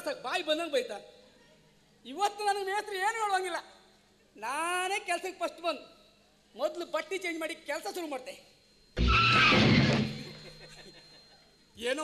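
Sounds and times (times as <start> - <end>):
loud high-pitched screech: 9.0 - 10.3.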